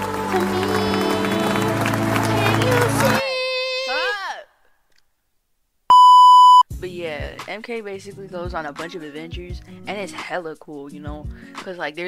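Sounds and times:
electronic censor bleep: 5.9s - 6.6s.

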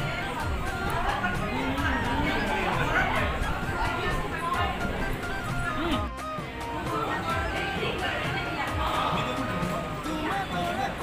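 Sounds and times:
music playing: 0.0s - 11.0s
women chattering: 0.0s - 11.0s.

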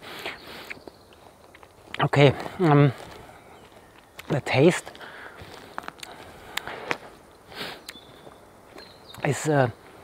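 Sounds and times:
footsteps on forest floor: 0.5s - 9.9s
person sniffing: 7.5s - 7.9s.

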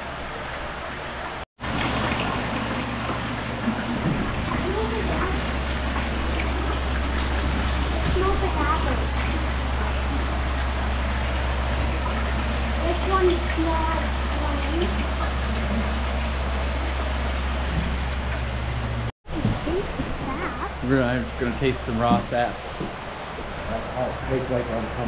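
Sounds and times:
sap gushing into metal tank: 1.6s - 19.1s
low steady hum: 1.6s - 25.0s.

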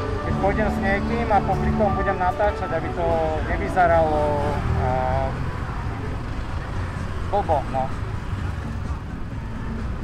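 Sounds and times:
scooter rumble in traffic: 0.0s - 10.0s.

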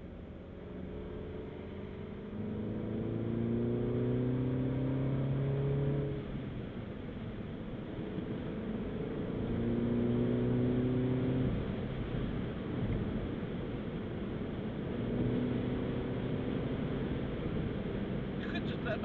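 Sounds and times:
car engine from inside cabin: 0.0s - 19.0s.

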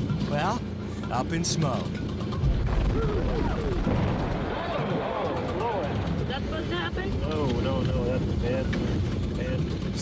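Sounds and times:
deep explosion boom: 2.4s - 6.3s
low rumble: 2.4s - 10.0s.

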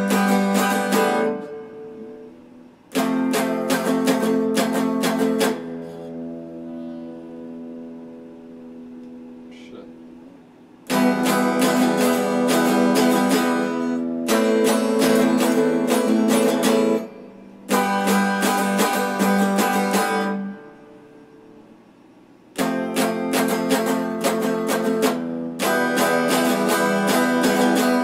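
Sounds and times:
electric guitar strumming: 0.0s - 21.8s, 22.5s - 28.0s.

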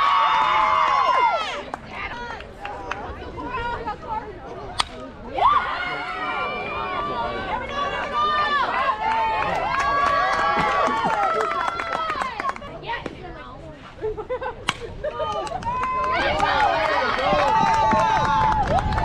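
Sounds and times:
people shouting and cheering: 0.0s - 13.2s, 14.9s - 19.0s.

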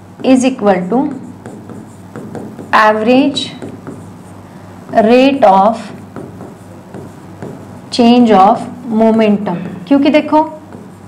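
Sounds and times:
marker writing on a board: 0.2s - 9.1s, 10.2s - 11.0s.

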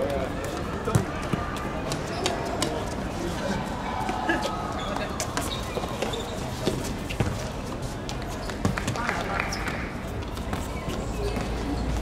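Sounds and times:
shoes on hard court: 0.0s - 3.2s, 4.0s - 12.0s
background noise: 0.0s - 12.0s.

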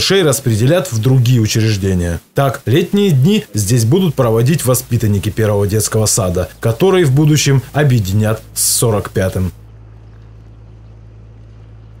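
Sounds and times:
faint background hiss: 0.0s - 12.0s
steady low hum: 0.0s - 12.0s.

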